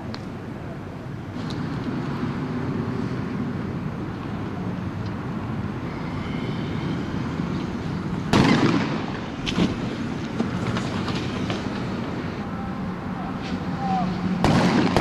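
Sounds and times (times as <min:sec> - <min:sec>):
vehicle rumbling: 0:00.0 - 0:15.0.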